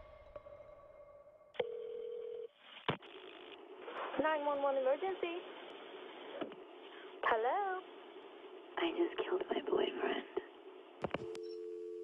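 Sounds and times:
steady telephone tone: 1.6 - 2.6, 11.2 - 12.0.

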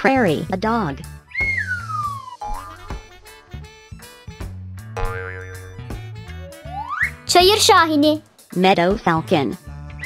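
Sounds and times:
children's music with bass line: 0.0 - 10.0
descending whistle-like note: 1.4 - 2.5.

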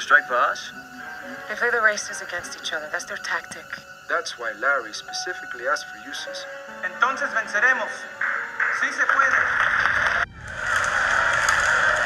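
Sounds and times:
crowd applauding: 8.2 - 12.0.

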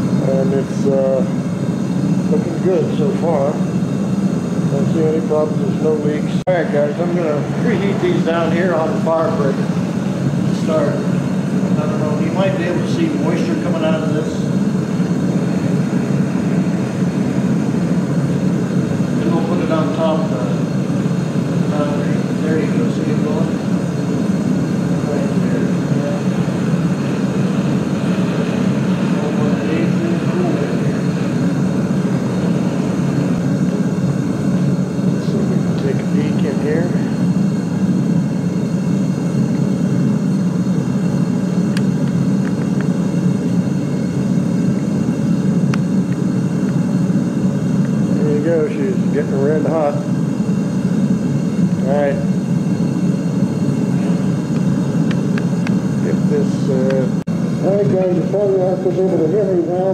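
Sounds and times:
foundry burner roaring: 0.0 - 59.9.

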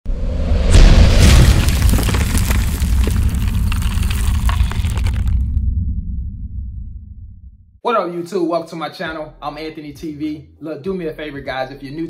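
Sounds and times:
deep rumbling boom impact: 0.6 - 7.8
crumbling debris rushing: 1.0 - 5.6.

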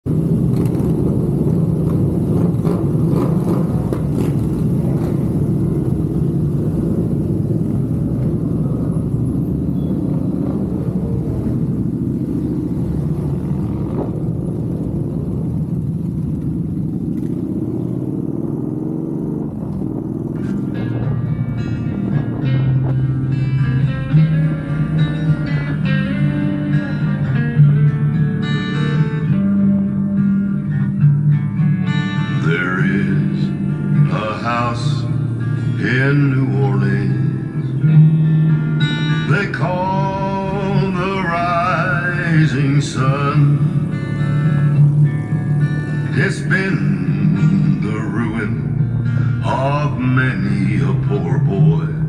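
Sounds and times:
motorcycle engines rumbling: 0.0 - 52.0
guitar music: 0.1 - 52.0.

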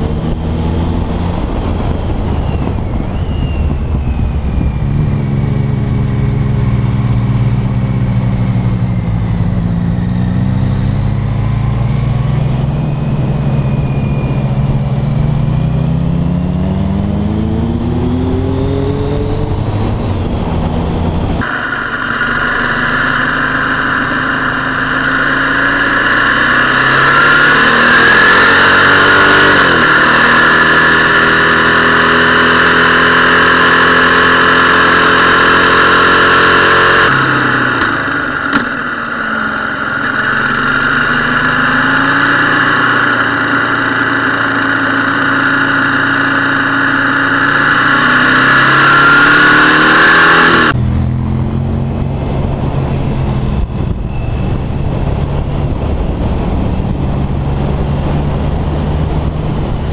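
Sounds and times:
wind on microphone: 0.0 - 7.1, 50.7 - 59.9
motorcycle engine revving: 0.0 - 59.9.

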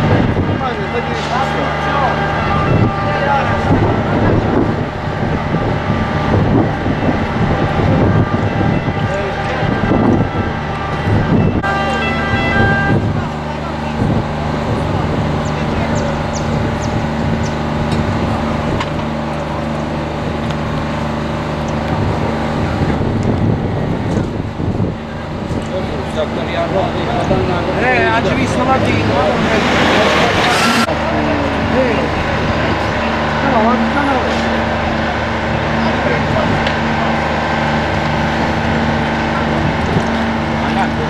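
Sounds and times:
crowd talking: 0.0 - 41.0
vehicle engine idling: 0.0 - 41.0.

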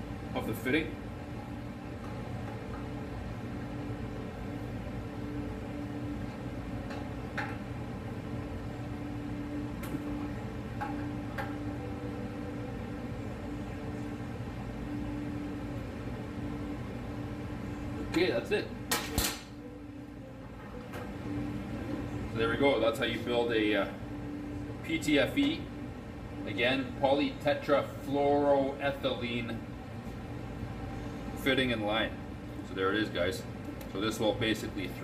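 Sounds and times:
low workshop hum: 0.0 - 35.0.

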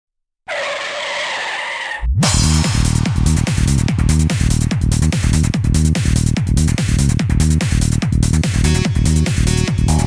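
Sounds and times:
car tyre screech: 0.5 - 2.2.

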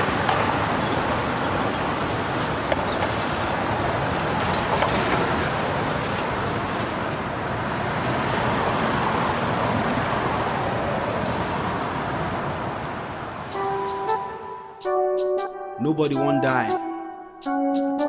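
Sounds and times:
passing cars and engines: 0.0 - 14.7.

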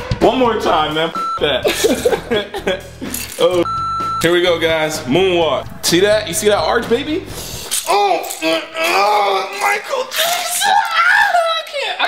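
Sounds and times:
background music: 0.0 - 10.1
electronic beep: 1.1 - 1.6, 3.6 - 4.7
man laughing: 1.6 - 3.2.

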